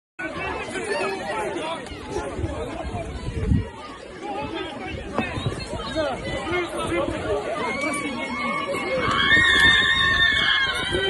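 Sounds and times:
crowd voices overlapping: 0:00.2 - 0:11.0.

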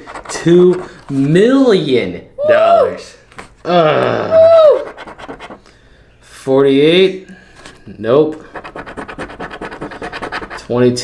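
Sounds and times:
coin scratching a ticket: 0:00.0 - 0:01.2, 0:04.8 - 0:05.6, 0:08.4 - 0:10.7.

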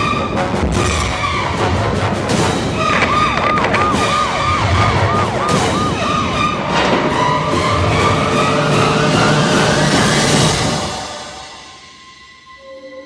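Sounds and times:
dramatic music with sharp hits: 0:00.0 - 0:12.6
rapid wailing siren: 0:02.8 - 0:10.6.

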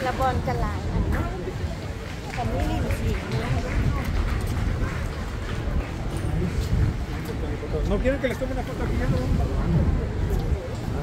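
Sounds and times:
passers-by talking: 0:00.0 - 0:11.0.

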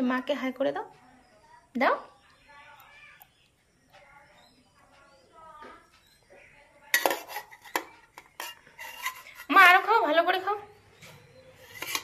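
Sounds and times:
metal spoon clinking on pot: 0:06.9 - 0:09.8, 0:11.6 - 0:12.0.

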